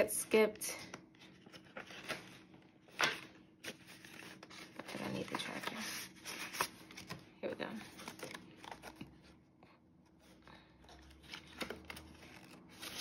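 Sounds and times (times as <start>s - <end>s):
plastic and banknotes rustling: 1.2s - 9.2s.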